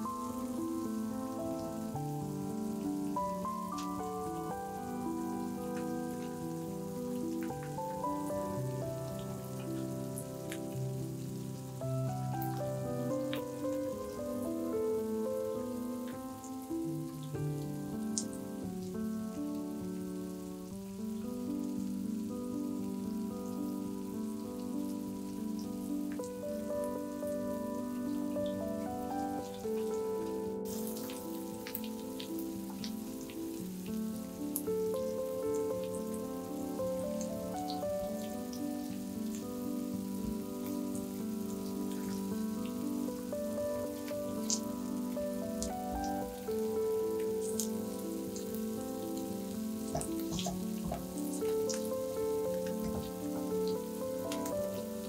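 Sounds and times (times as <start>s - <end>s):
potatoes sizzling in oil: 0.0s - 55.0s
soft background music: 0.0s - 55.0s.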